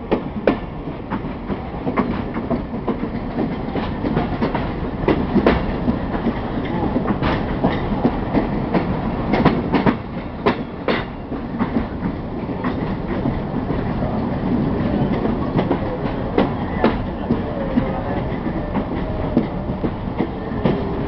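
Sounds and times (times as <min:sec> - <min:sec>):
passenger train rumbling: 0:00.0 - 0:21.0
wheels clacking over rail joints: 0:00.0 - 0:21.0.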